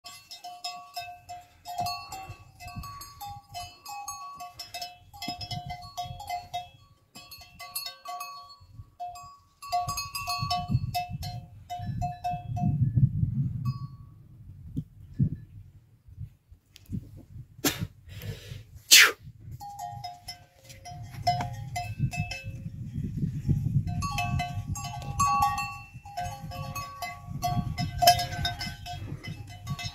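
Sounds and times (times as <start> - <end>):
animal neck bells jangling: 0.0 - 12.8, 19.6 - 29.9.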